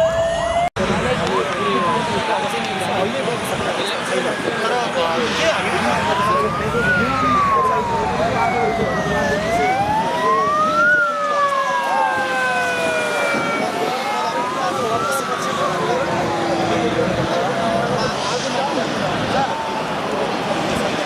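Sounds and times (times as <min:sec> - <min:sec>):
crowd chatter: 0:00.0 - 0:21.0
emergency sirens wailing: 0:00.0 - 0:21.0.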